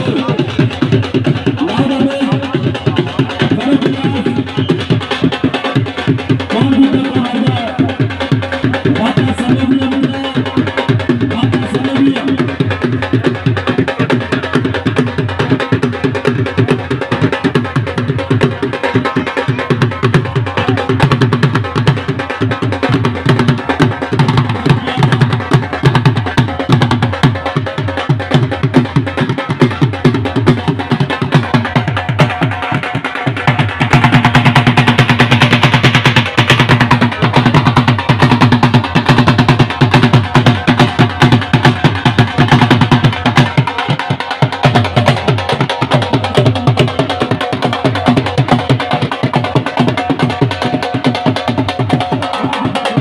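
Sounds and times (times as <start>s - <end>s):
dhol drums beating fast: 0.0s - 53.0s.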